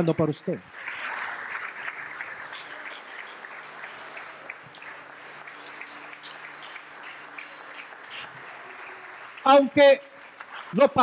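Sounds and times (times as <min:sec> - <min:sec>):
crowd applauding: 0:00.0 - 0:11.0.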